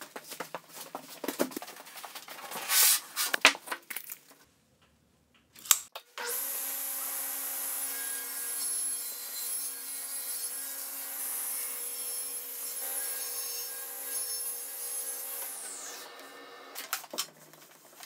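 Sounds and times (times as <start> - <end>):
table saw whining: 6.2 - 17.0.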